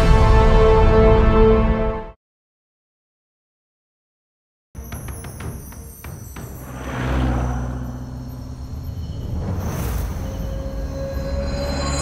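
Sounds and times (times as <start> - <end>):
dark droning film score: 4.8 - 12.0
bus engine rumble: 5.5 - 12.0.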